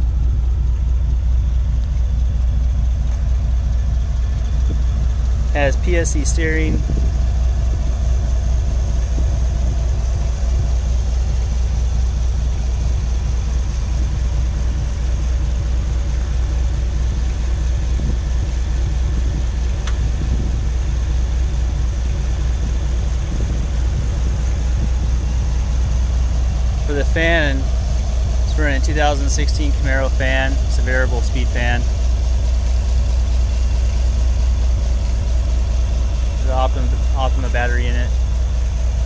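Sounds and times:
car engine idling: 0.0s - 39.0s.

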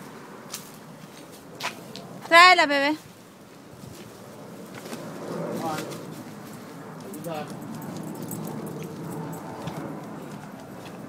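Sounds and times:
footsteps on concrete: 5.8s - 11.0s.

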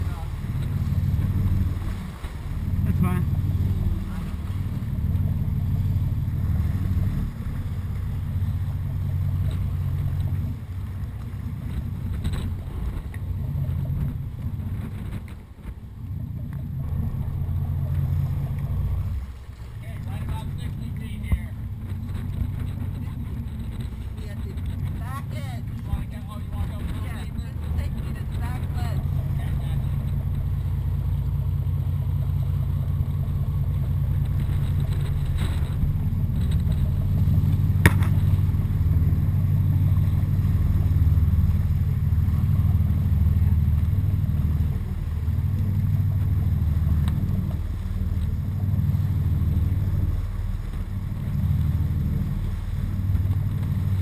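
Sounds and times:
boat engine drone: 0.0s - 54.0s.

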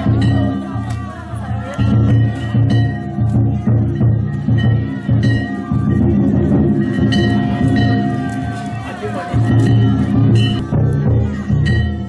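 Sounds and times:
drum beating: 0.0s - 12.0s
metal gongs ringing: 0.0s - 12.0s.

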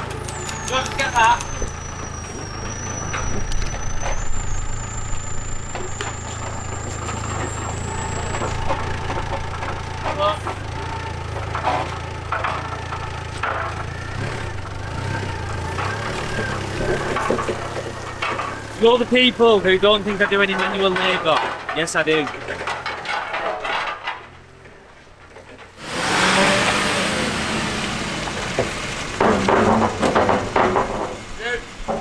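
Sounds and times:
diesel forklift engine idling: 0.0s - 23.0s, 24.2s - 32.0s.

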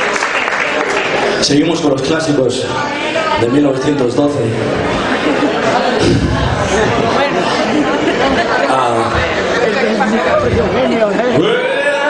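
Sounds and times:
crowd chatter close by: 0.0s - 12.0s.

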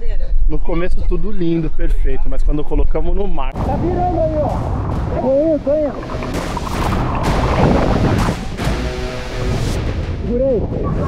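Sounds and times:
wind rumbling on microphone: 3.4s - 11.0s
seawater splashing and churning: 3.6s - 9.8s.

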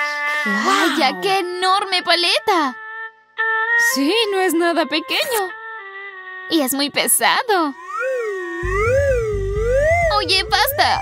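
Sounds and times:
wavering siren-like tone: 7.8s - 11.0s
background music with low beat: 8.6s - 11.0s.

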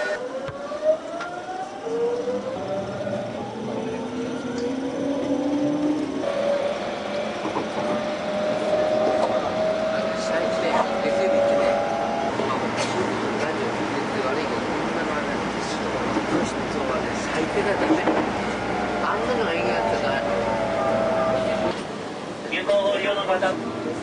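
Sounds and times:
train traction motors whining: 0.0s - 22.4s
train car rumble: 1.1s - 24.0s.

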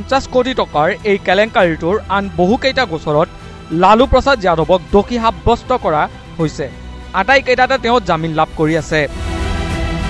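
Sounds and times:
person speaking: 0.0s - 9.2s
background music: 0.0s - 10.0s.

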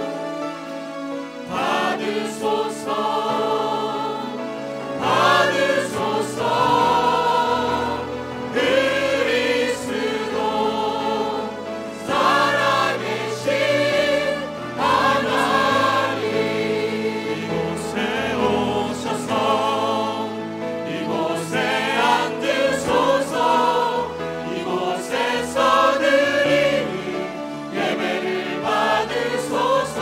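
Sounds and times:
sustained instrumental accompaniment: 0.0s - 30.0s
group singing worship song: 1.5s - 30.0s.

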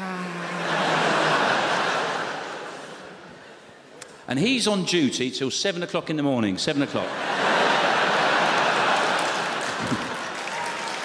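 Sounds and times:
audience laughing: 0.4s - 3.6s, 6.9s - 10.6s
audience applauding: 7.6s - 11.0s.

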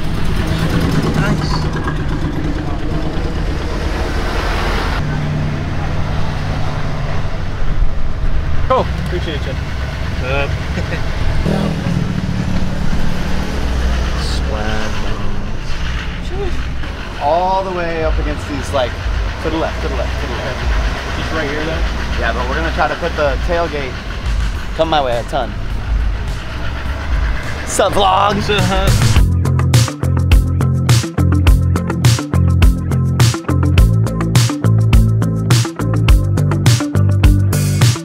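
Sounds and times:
voices: 0.0s - 6.4s, 8.7s - 29.2s
truck engine rumble: 0.0s - 38.0s.

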